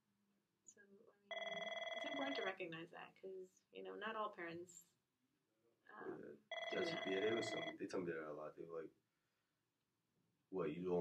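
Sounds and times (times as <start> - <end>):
electronic telephone ringing: 1.3 - 2.6, 6.5 - 7.8.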